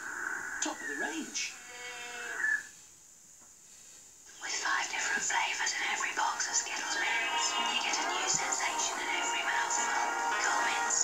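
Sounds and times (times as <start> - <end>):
commercial music with singing: 6.4 - 11.0.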